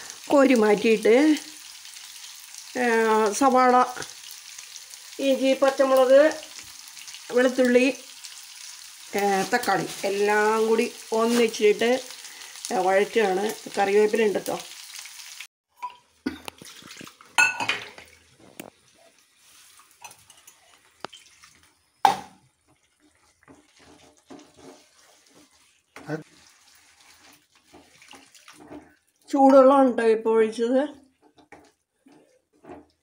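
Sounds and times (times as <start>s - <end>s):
chicken sizzling in oil: 0.0s - 15.5s.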